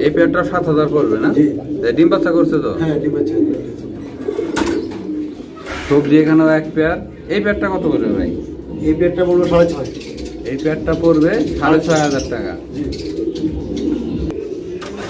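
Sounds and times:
men talking: 0.0 - 15.0
pigeons cooing: 0.0 - 15.0.

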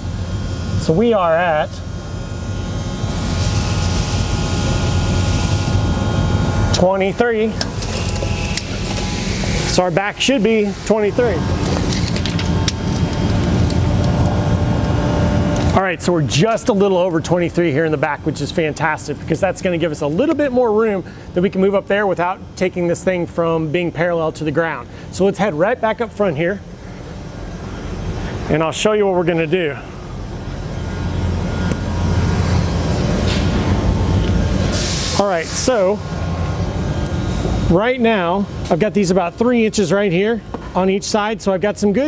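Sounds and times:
low machine rumble: 0.0 - 41.7.

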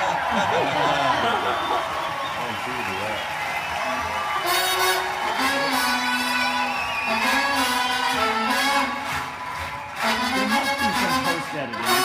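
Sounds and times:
live band music: 3.8 - 12.0.

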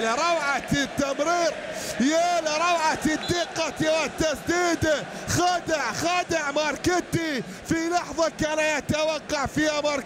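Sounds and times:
man commentating: 0.0 - 10.0.

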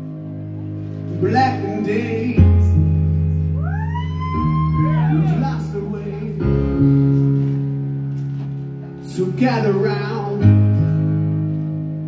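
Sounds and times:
person singing: 1.2 - 6.9.

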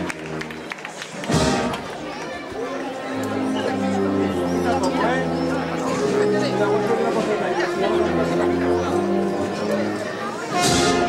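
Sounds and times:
processional band music: 0.0 - 2.1, 2.9 - 11.0
street crowd chatter: 0.0 - 11.0.

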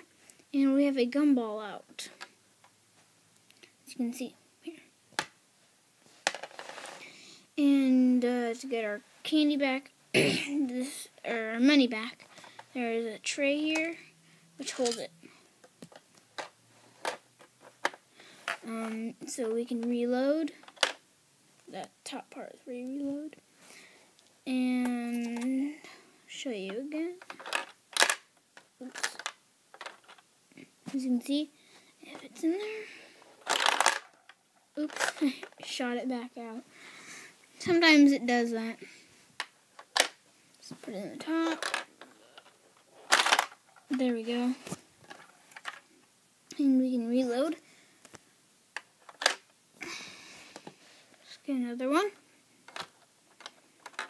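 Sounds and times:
plastic bricks clacking: 27.2 - 28.2, 28.8 - 30.2, 33.4 - 35.3, 41.4 - 42.5, 43.1 - 44.0, 48.8 - 49.5, 52.7 - 54.0.

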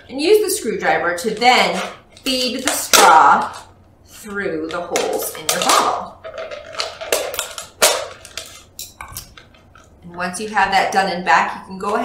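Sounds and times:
plastic bottle crackling: 4.7 - 10.0.

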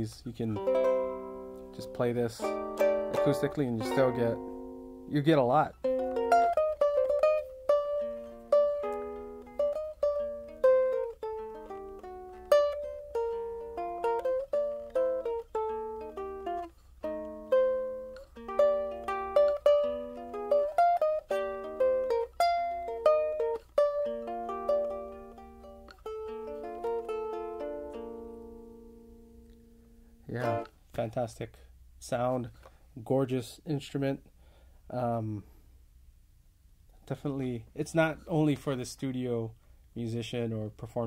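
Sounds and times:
fingerpicked ukulele melody: 0.0 - 30.8.

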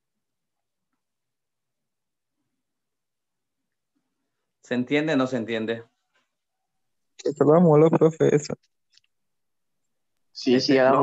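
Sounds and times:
person speaking: 7.2 - 8.7.

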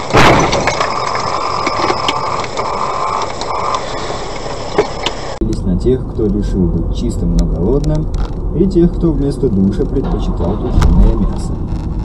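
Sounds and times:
car collision impact: 0.0 - 0.9
engine and road noise: 0.0 - 12.0.

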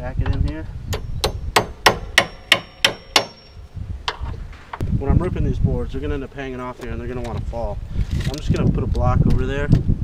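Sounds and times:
hammer striking a nail: 0.9 - 3.6.

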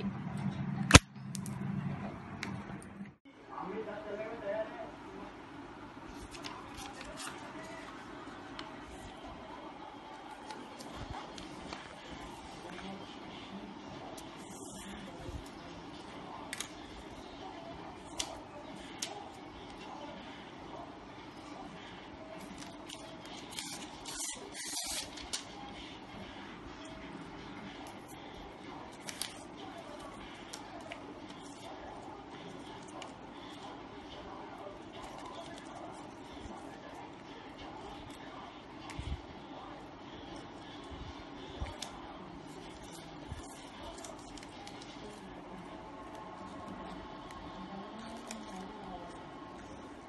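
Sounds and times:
paper crackling: 6.1 - 9.3, 14.0 - 20.4, 21.8 - 26.4, 27.6 - 39.0, 40.2 - 50.0
paper rustling: 6.1 - 9.3, 27.7 - 33.7, 41.5 - 49.9.

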